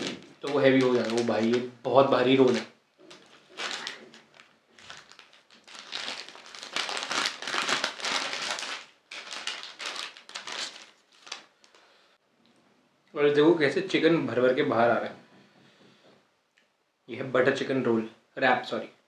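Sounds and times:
paper wrapper crinkling and tearing: 0.0 - 12.0.

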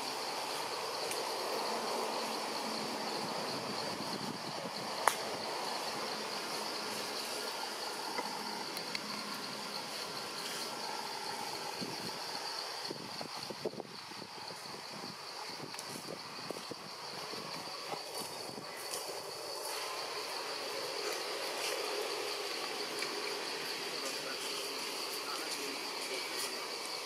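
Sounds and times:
insects buzzing: 0.0 - 27.0.

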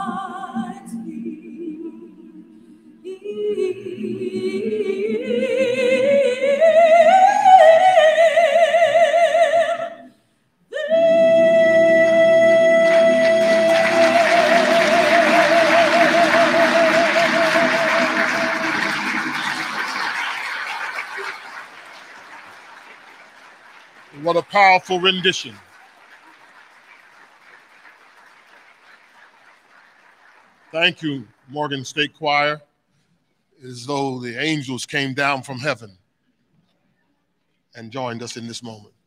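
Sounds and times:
mixed choir singing: 0.0 - 7.8, 10.8 - 20.0.

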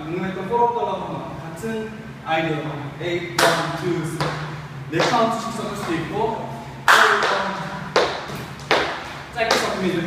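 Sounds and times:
dance shoes stamping on wood: 4.2 - 5.2, 6.9 - 9.8.

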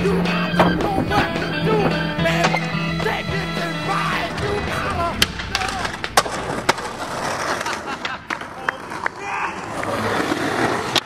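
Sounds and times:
skateboard wheels rolling on asphalt: 0.0 - 11.0.

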